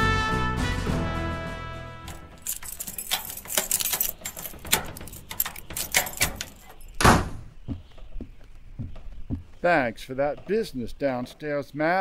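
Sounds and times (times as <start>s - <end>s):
key clicking: 2.1s - 7.0s
door thud: 2.1s - 7.6s
footsteps: 2.1s - 11.4s.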